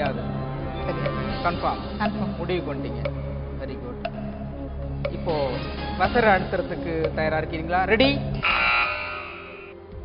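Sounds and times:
electronic buzzer tone: 8.4s - 9.8s.

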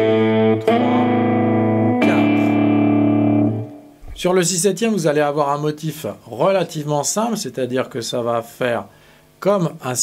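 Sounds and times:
fingerstyle electric guitar: 0.0s - 4.2s.

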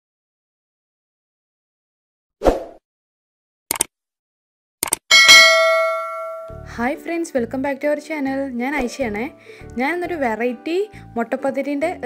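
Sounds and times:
quick clicks: 3.7s - 3.9s, 4.8s - 5.0s
bright bell ding: 5.1s - 6.7s.

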